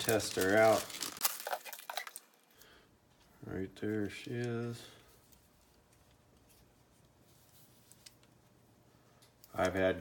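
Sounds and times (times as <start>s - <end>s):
plastic bag crinkling: 0.0s - 2.5s.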